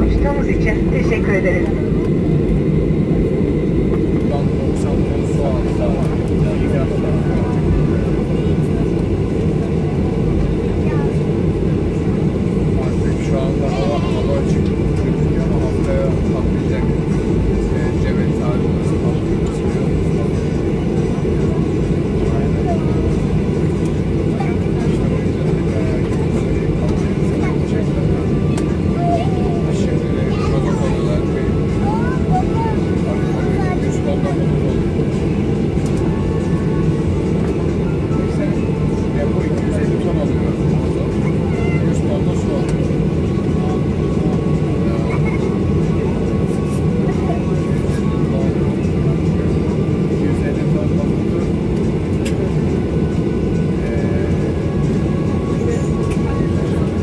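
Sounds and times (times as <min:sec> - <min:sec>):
airplane cabin engine noise: 0:00.0 - 0:57.0
faint passenger chatter: 0:00.0 - 0:57.0.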